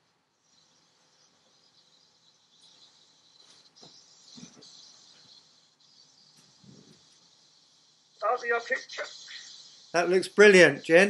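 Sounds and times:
insects chirring: 0:00.5 - 0:11.0.

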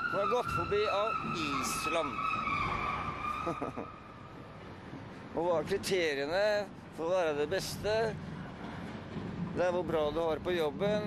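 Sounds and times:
high-pitched squeal: 0:00.0 - 0:04.2.

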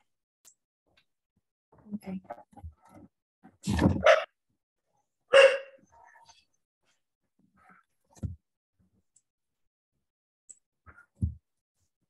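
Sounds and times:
dog barking: 0:04.0 - 0:04.3, 0:05.3 - 0:05.9.

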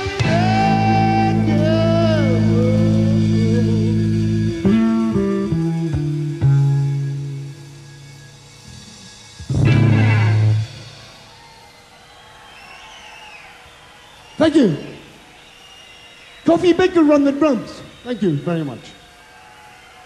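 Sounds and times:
rock band playing live: 0:00.0 - 0:11.6.

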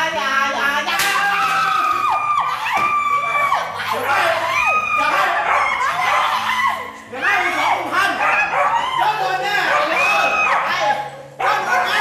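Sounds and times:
women screaming: 0:01.2 - 0:11.1.

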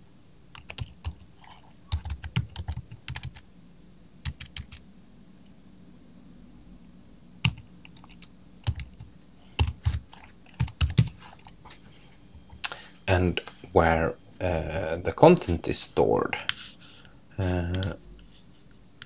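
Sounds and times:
computer keyboard typing: 0:00.5 - 0:03.4, 0:04.2 - 0:04.8, 0:07.4 - 0:11.6.

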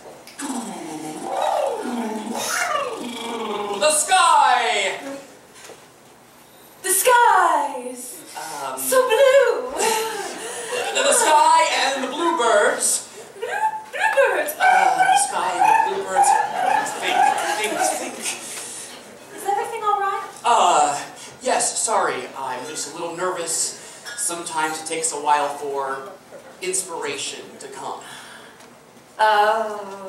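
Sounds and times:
person wordless vocalizing: 0:00.3 - 0:04.0.

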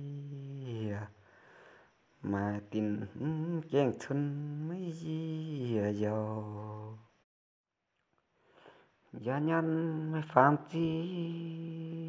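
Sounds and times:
man singing folk song: 0:02.2 - 0:07.1, 0:09.2 - 0:12.0.

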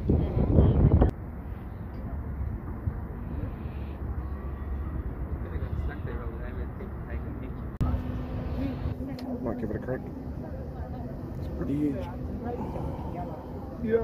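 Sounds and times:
faint voices: 0:00.0 - 0:14.0
steady hum: 0:07.8 - 0:14.0.

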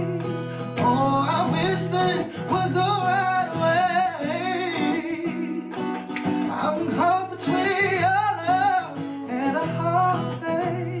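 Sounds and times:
acoustic guitar: 0:00.0 - 0:11.0
man singing pop song: 0:00.0 - 0:11.0.

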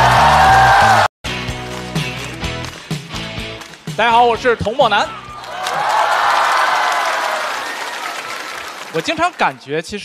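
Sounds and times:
audience applauding and cheering: 0:00.0 - 0:04.0, 0:05.1 - 0:09.7.

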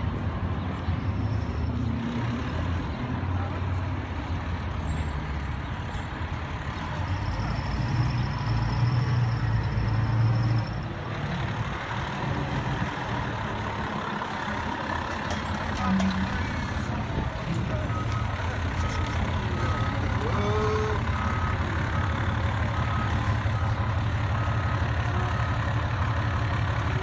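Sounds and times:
city traffic: 0:00.0 - 0:27.0
fire truck diesel engine rumbling: 0:00.0 - 0:27.0.

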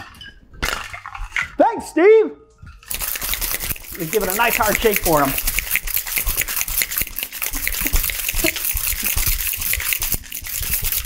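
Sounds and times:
cocktail shaker shaken hard: 0:02.8 - 0:11.0.

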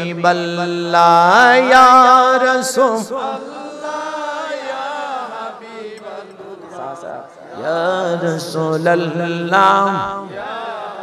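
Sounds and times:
male congregation chanting in unison: 0:00.0 - 0:11.0.

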